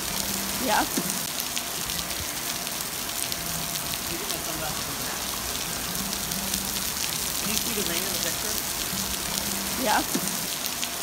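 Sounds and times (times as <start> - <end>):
rain falling on a pool: 0.0 - 11.0.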